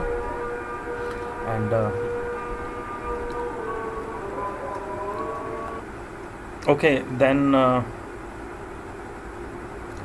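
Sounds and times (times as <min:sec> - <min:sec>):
drawn-out pitched tone: 0:00.0 - 0:05.8.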